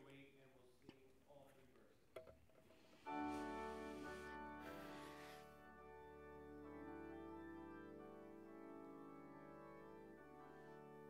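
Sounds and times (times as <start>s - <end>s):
church organ chord: 3.0s - 11.0s.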